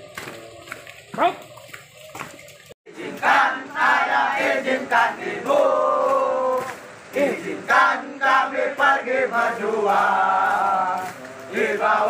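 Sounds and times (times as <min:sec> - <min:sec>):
men singing in unison: 0:02.9 - 0:12.0.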